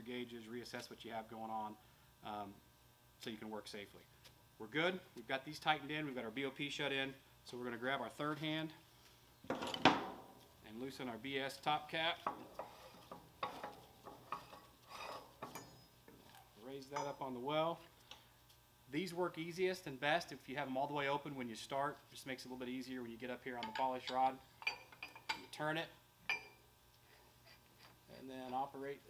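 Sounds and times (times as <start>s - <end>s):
ringing metal clink: 15.4s - 16.0s.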